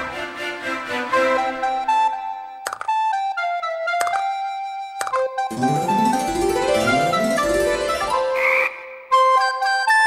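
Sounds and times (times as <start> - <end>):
light keyboard music: 1.2 - 8.4, 9.1 - 10.0.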